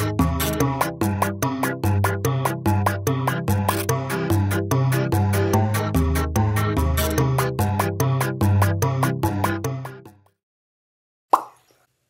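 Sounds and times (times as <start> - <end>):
background music: 0.0 - 10.4.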